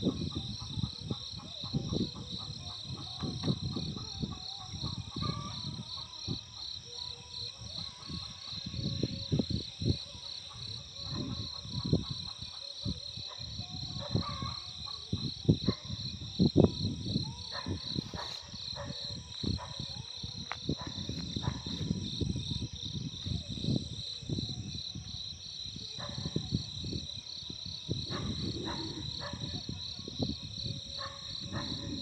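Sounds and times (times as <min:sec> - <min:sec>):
insects trilling: 0:00.0 - 0:32.0.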